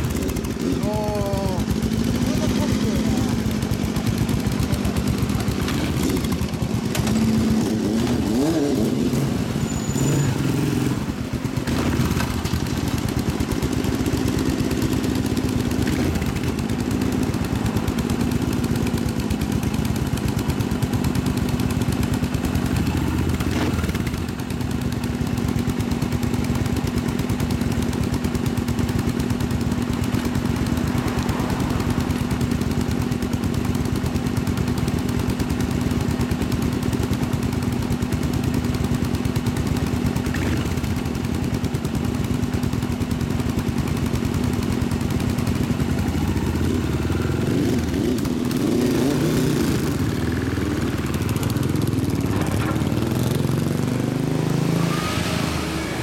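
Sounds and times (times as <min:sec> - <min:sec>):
motorcycles idling: 0:00.0 - 0:56.0
motorcycles revving and pulling away: 0:00.0 - 0:56.0.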